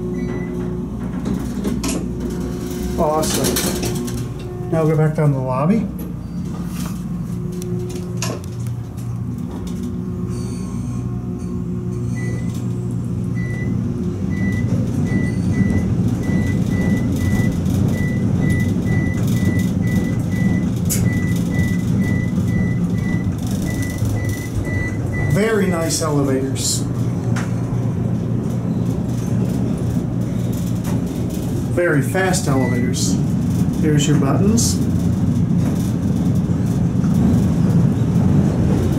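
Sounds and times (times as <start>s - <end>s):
elevator hum and rumble: 0.0s - 38.9s.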